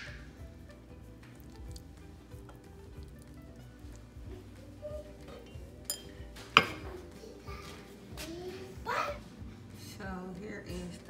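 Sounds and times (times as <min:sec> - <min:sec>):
ceramic bowl and utensil clinking: 0:05.2 - 0:07.0.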